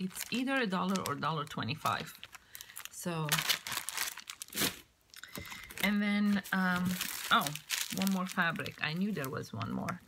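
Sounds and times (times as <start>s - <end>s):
plastic packaging crinkling: 0.0s - 10.0s.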